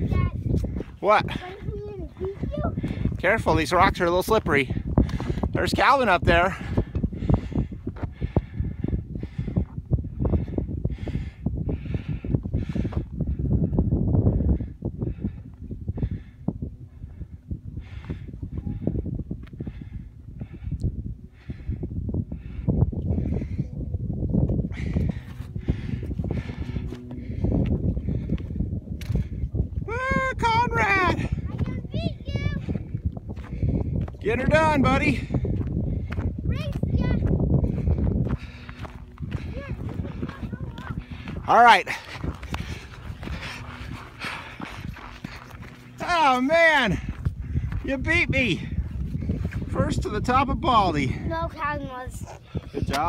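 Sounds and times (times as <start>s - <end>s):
wind rumble on microphone: 0.0s - 53.0s
footsteps on rocky ground: 4.7s - 5.8s, 24.4s - 29.8s, 32.9s - 34.5s, 35.3s - 49.7s
person breathing hard: 6.5s - 23.8s, 24.6s - 29.5s, 35.3s - 46.0s, 47.0s - 47.9s, 52.2s - 53.0s.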